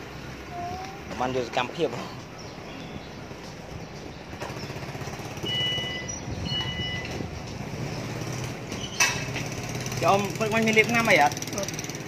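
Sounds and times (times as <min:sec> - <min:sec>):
short electronic beeps: 0:05.4 - 0:07.2.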